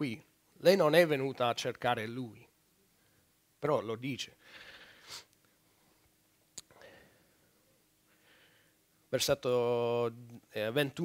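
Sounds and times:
breath on microphone: 0:04.4 - 0:05.3.

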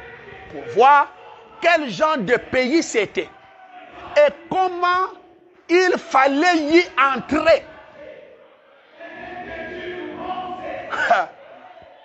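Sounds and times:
choir singing: 0:00.0 - 0:05.6, 0:06.2 - 0:12.0.

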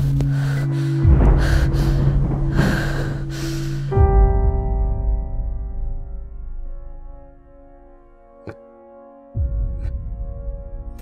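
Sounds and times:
low music drone: 0:00.0 - 0:11.0.

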